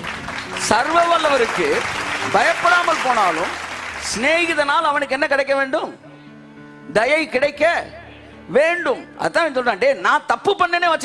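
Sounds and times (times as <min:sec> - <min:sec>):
man preaching: 0:00.6 - 0:06.0, 0:06.9 - 0:11.0.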